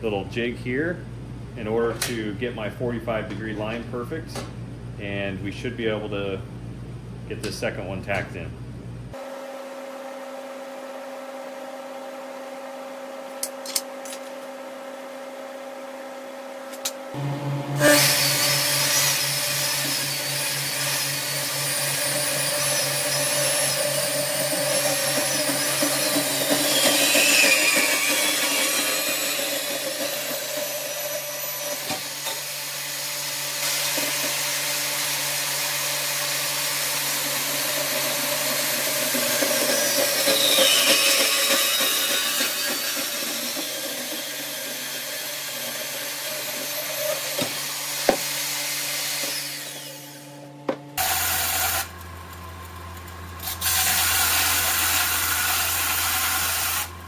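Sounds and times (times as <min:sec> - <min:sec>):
high screech falling in pitch: 0:17.7 - 0:20.4
bandsaw cutting metal tubing: 0:17.7 - 0:50.3, 0:51.0 - 0:52.0, 0:53.4 - 0:57.0.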